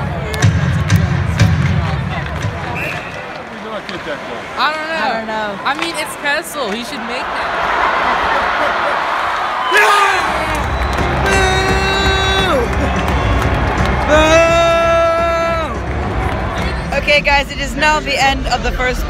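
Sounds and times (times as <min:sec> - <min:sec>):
arena crowd noise: 0:00.0 - 0:19.0.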